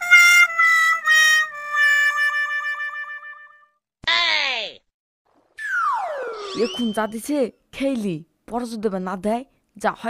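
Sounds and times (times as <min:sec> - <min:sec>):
cartoon swoop falling in pitch: 0:05.6 - 0:07.4
wavering musical note: 0:05.6 - 0:07.4.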